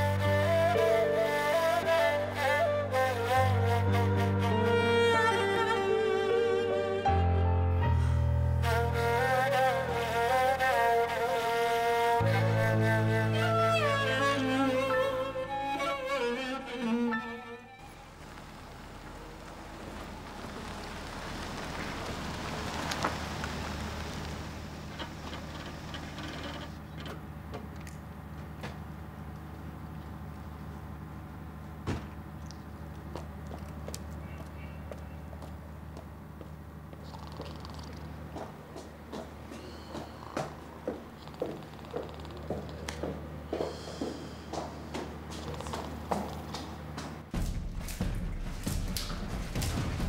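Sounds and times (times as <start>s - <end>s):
bowed strings music: 0.0s - 18.2s
car driving by: 17.8s - 25.9s.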